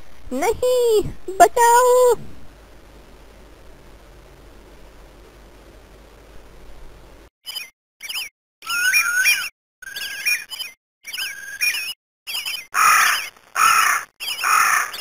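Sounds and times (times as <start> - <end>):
bird whistled calls: 7.5 - 13.3
bird harsh squawks: 8.6 - 10.4, 12.8 - 15.0.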